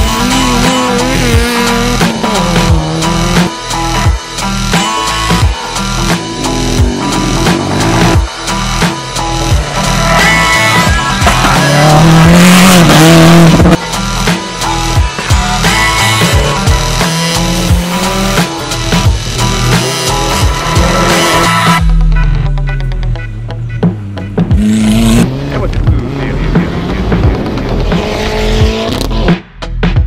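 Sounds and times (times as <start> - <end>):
race car engine: 0.0 - 29.4
tyres on dirt track: 0.0 - 29.4
background music with steady beat: 0.0 - 30.0.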